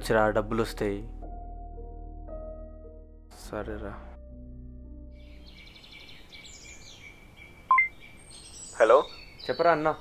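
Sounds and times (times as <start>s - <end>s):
soft background music: 0.0s - 7.0s
birds chirping: 5.2s - 10.0s
faint outdoor ambience: 5.2s - 10.0s
two-note electronic beep: 7.7s - 7.9s.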